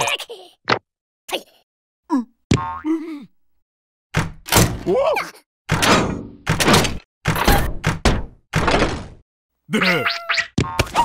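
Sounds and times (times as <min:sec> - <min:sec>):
wordless character vocalizing: 0:09.7 - 0:10.2
cartoon sound effects: 0:09.7 - 0:11.0.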